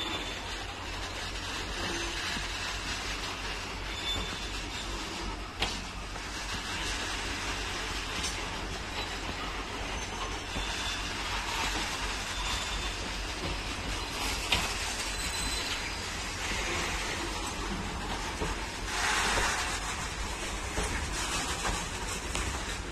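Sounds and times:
faint wheel squeals: 0.0s - 5.9s, 8.8s - 17.5s
steel wheels rumbling on rail: 0.0s - 22.9s.

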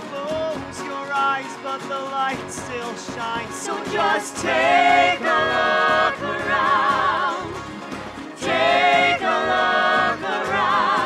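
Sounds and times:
voices singing in harmony: 3.5s - 11.0s.

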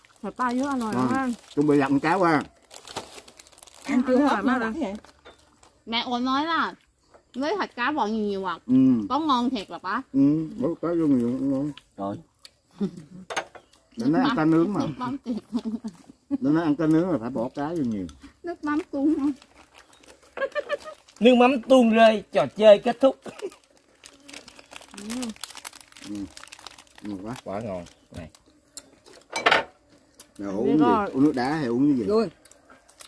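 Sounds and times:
rice paper crinkling: 0.0s - 6.2s, 16.9s - 29.3s, 30.0s - 33.0s
person talking: 30.4s - 31.8s.

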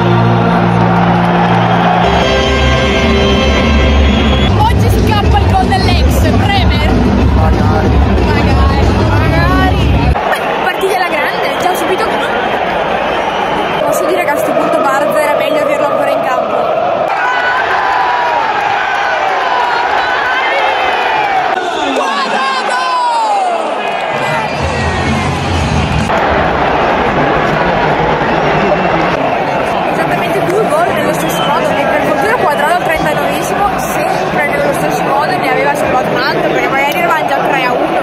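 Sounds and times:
stadium crowd chanting and shouting: 0.0s - 38.0s.

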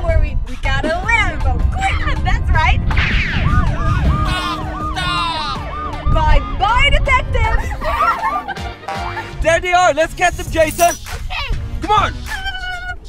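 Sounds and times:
wind buffeting microphone: 0.0s - 8.1s
siren yelping: 3.1s - 8.6s
person exclaiming: 4.2s - 5.6s.

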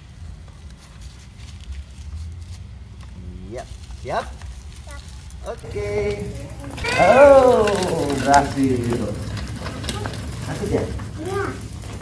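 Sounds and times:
low outdoor rumble: 0.0s - 12.0s
man asking a question: 5.4s - 9.3s.

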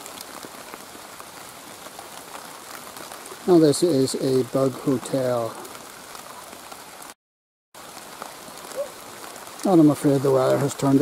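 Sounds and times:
steady rain falling: 0.0s - 7.2s, 7.8s - 11.0s.

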